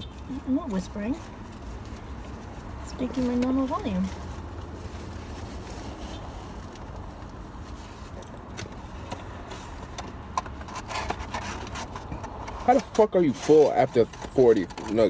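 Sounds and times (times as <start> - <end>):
faint clicks and rustles: 0.1 - 15.0.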